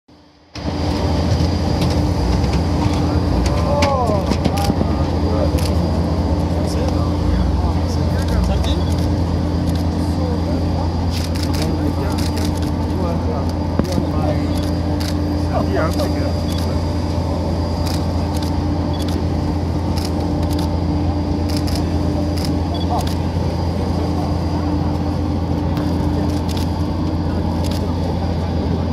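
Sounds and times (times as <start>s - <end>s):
jet airliner whining drone: 0.1s - 28.9s
voices: 2.1s - 28.9s.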